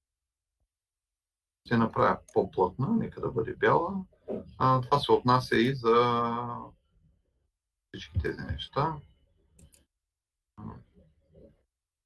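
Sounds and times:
computer mouse clicks: 9.6s - 9.9s.

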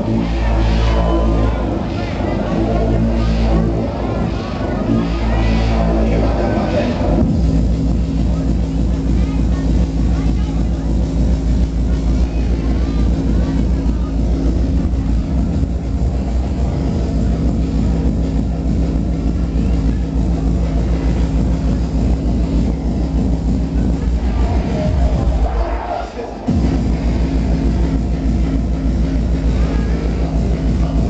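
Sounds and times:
jungle music over sound system: 0.0s - 31.0s.

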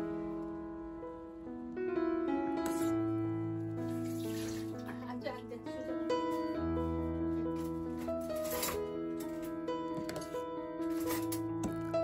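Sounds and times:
soft piano background music: 0.0s - 12.0s.

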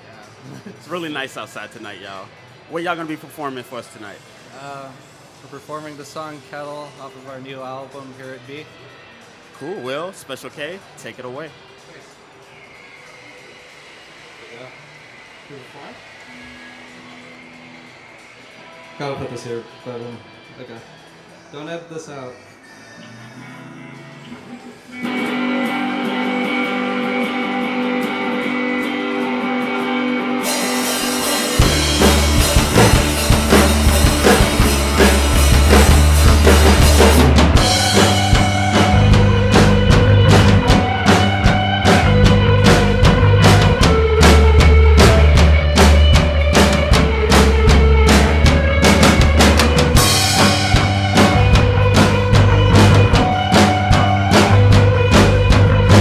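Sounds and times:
electric guitar: 23.2s - 56.0s
cymbals: 24.9s - 56.0s
drum kit: 25.0s - 56.0s.

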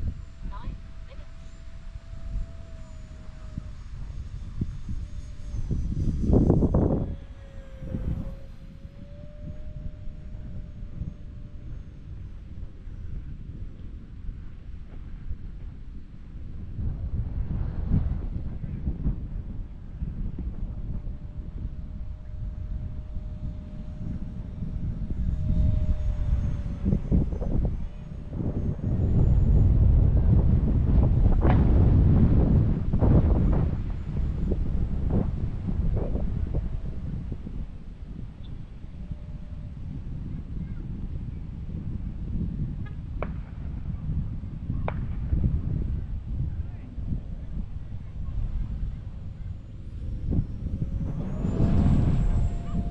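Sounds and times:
model jet fan whine: 0.0s - 52.9s
wind buffeting microphone: 0.0s - 52.9s.

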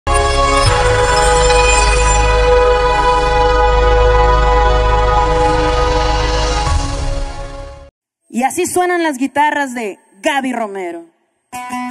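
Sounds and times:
intro music chord over bass: 0.1s - 7.9s.

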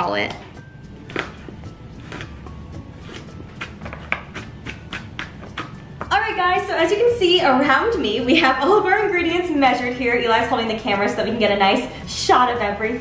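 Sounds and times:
knife chopping on cutting board: 1.0s - 2.4s, 3.0s - 6.1s.

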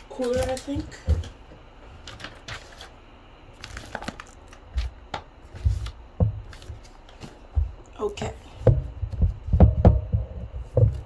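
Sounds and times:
packaging rustling and crinkling: 0.0s - 7.4s
dull low thumps: 8.6s - 11.0s.

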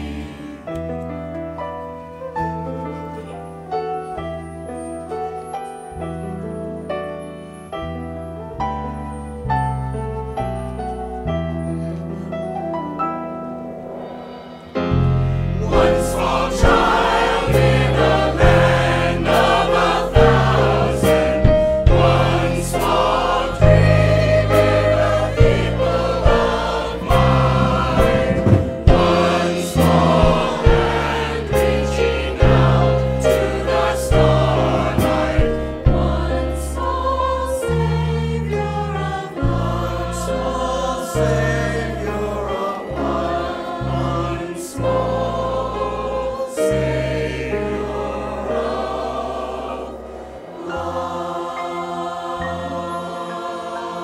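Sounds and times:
mixed choir singing: 0.0s - 1.0s, 13.4s - 54.0s
instrumental accompaniment with bass: 0.0s - 53.9s.

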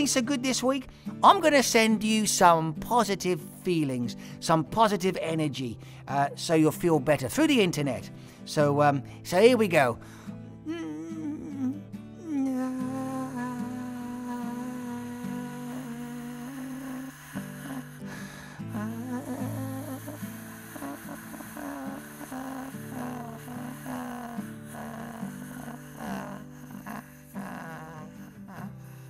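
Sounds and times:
man humming long notes: 10.6s - 29.0s.

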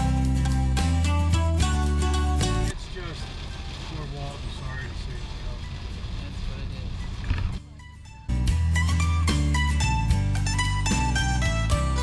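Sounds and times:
vehicle road and engine rumble: 0.0s - 12.0s.

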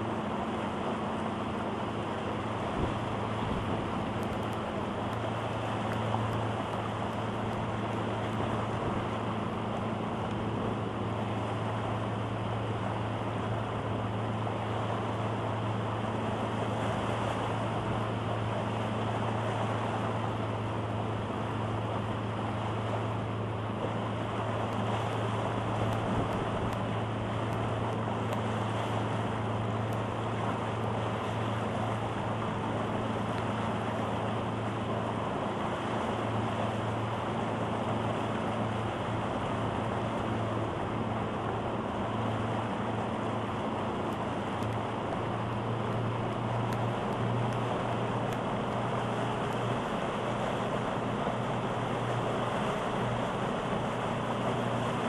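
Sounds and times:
outboard motor running: 0.0s - 55.0s
water rushing along hull: 0.0s - 55.0s
wind on microphone: 2.6s - 9.2s, 25.2s - 28.1s.

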